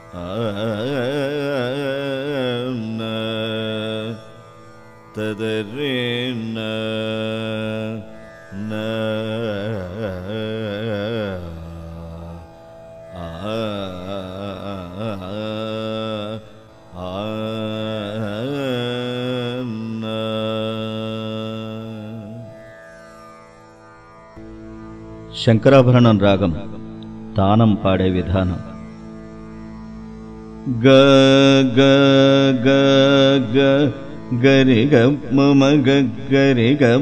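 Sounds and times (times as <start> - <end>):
man singing wordless vocal: 0.0 - 22.7, 25.3 - 29.0, 30.6 - 37.0.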